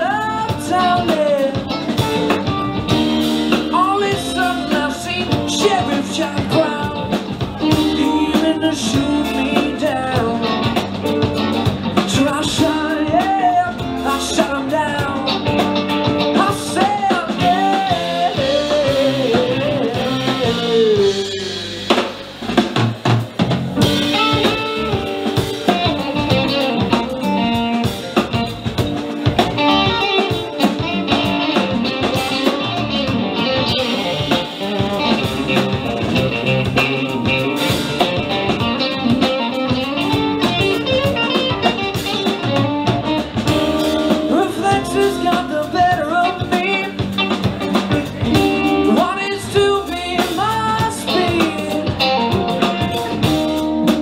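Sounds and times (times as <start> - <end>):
gliding lead guitar line: 0.0 - 54.0
rock band playing: 0.0 - 54.0.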